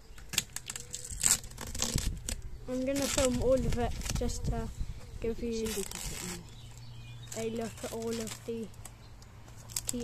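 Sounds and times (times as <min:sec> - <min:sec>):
tape being torn off: 0:00.1 - 0:04.4, 0:05.6 - 0:10.0.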